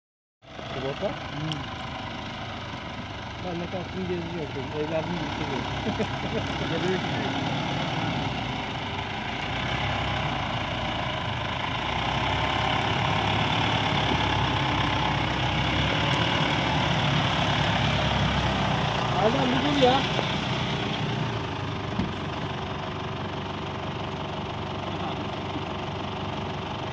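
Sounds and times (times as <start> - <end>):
truck engine driving through mud: 0.4 - 26.9.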